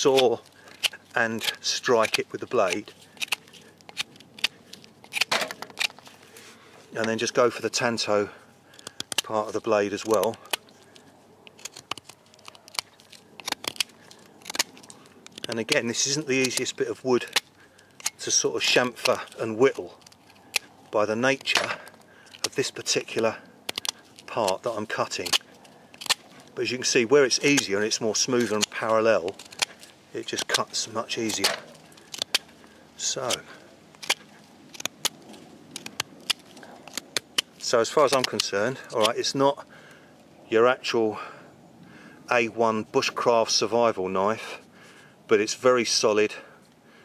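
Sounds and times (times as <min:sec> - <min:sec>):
blade scraping wood: 0:22.4 - 0:39.1.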